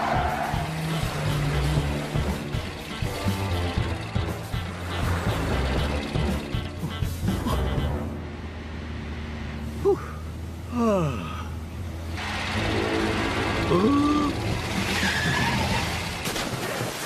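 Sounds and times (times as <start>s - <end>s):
small car engine humming: 0.0s - 16.3s
tyre skid: 13.7s - 17.0s.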